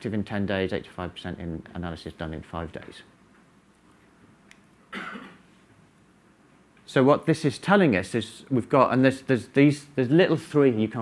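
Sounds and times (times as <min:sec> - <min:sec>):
person coughing: 0:04.9 - 0:05.5.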